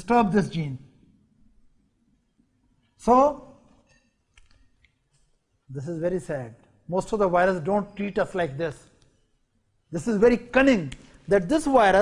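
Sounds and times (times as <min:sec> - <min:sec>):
man speaking: 0:00.0 - 0:00.8, 0:03.0 - 0:03.6, 0:05.7 - 0:08.9, 0:09.9 - 0:12.0.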